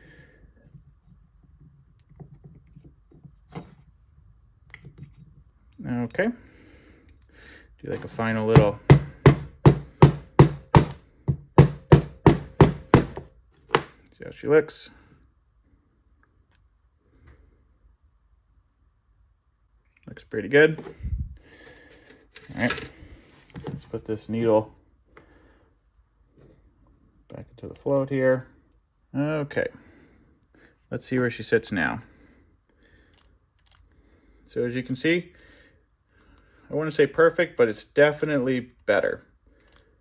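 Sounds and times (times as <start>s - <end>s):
faint handling sounds: 19.8s - 29.0s.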